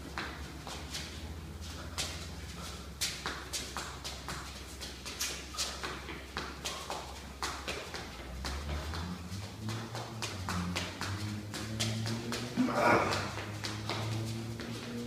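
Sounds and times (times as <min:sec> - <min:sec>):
punches and footwork: 0:00.0 - 0:15.0.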